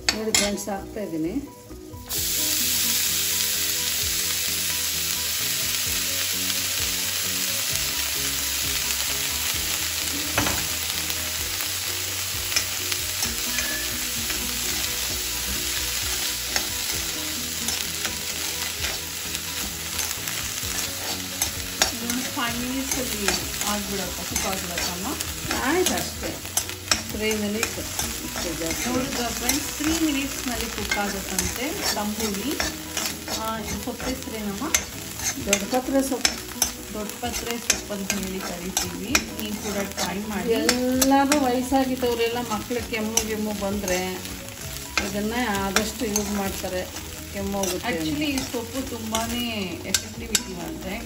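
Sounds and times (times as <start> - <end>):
leaves sizzling in hot ghee: 0.0 - 51.0
ladle scraping pan: 12.5 - 14.9, 19.9 - 41.5.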